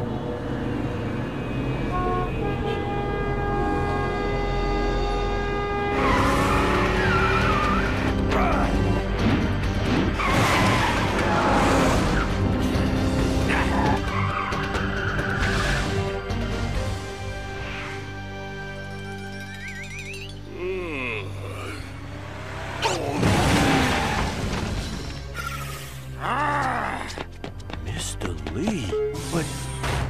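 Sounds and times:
car horns honking: 1.9 - 8.1
action music: 4.8 - 20.6.

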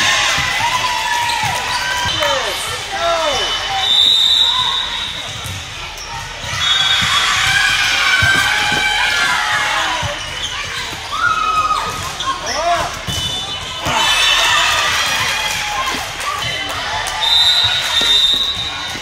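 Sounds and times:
balls thudding and bouncing: 5.2 - 14.3
sneakers squeaking on hardwood: 5.3 - 14.2.

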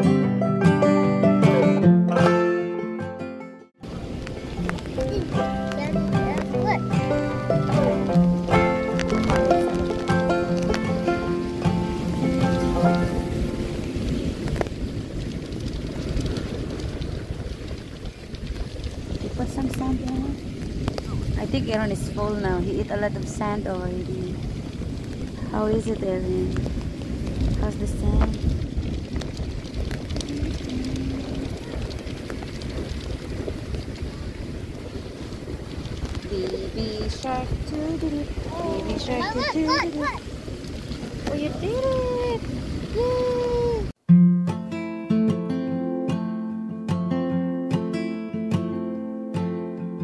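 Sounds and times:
background music: 0.0 - 3.7, 4.7 - 13.9, 44.1 - 50.0
wind buffeting microphone: 3.8 - 44.0.

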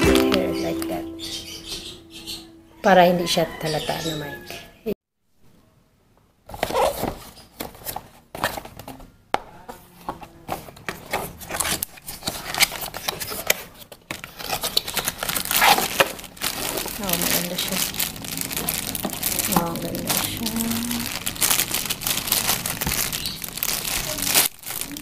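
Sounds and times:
plastic bag crinkling: 11.0 - 25.0.

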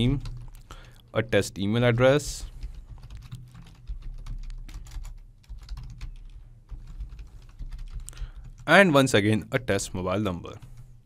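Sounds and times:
typing on computer keyboard: 0.0 - 1.0, 2.0 - 8.7
low steady hum: 0.0 - 11.0.

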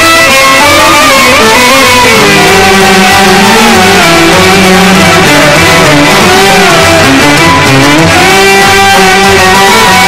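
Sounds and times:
live ensemble music with pitch slides: 0.0 - 10.0.

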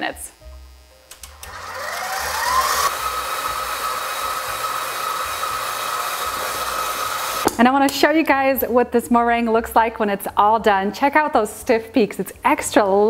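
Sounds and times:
stand mixer motor whining: 1.2 - 7.5.

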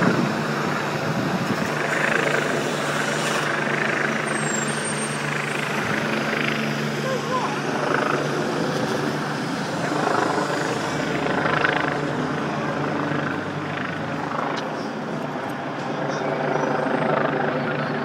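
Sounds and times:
helicopter rotor and engine drone: 0.0 - 18.0.

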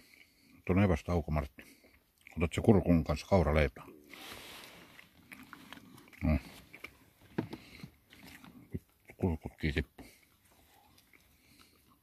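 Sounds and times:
dog crunching bread: 4.8 - 9.2, 10.0 - 12.0.

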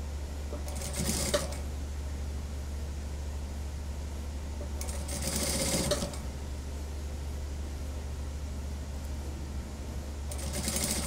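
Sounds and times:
steady low hum: 0.0 - 11.0
sewing machine stitching: 0.6 - 1.6, 4.8 - 6.2, 10.3 - 11.0.

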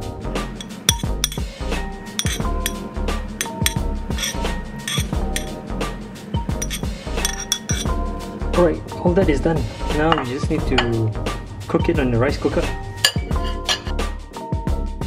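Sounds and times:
background music with beat: 0.0 - 15.0
metal spoon clinking on plate: 0.6 - 1.5, 2.1 - 2.8, 3.4 - 5.6, 6.4 - 7.9, 13.0 - 14.0.

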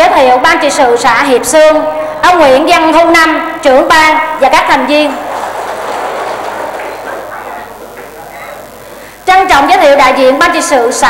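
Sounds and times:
audience applauding: 5.0 - 9.6.

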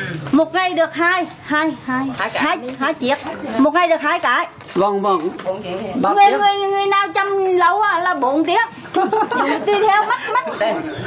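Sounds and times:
woman talking: 0.3 - 10.9.

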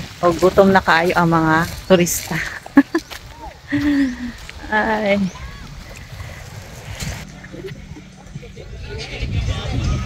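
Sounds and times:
wind buffeting microphone: 0.0 - 10.0
faint voices: 3.2 - 10.0.

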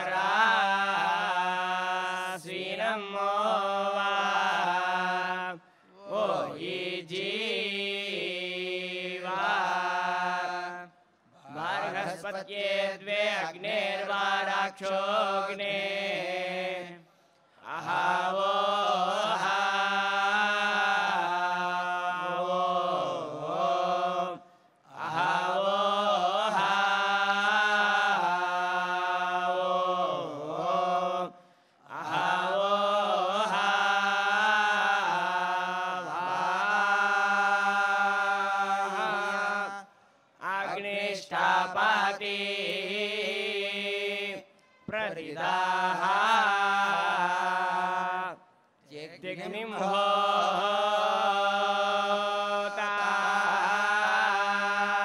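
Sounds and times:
men chanting into microphones: 0.0 - 10.9, 11.5 - 17.0, 17.6 - 55.0.

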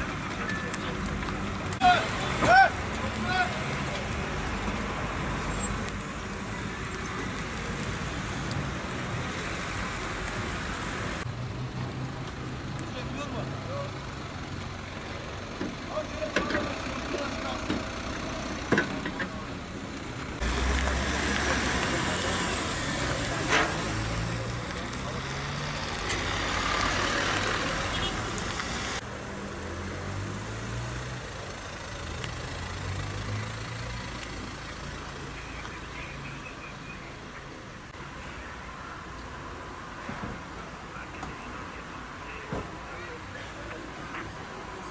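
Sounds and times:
cars passing: 0.0 - 44.9.

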